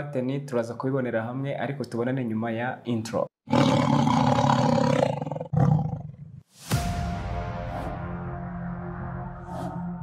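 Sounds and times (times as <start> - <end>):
animal roar: 3.5 - 6.2
sharp hit: 6.5 - 9.3.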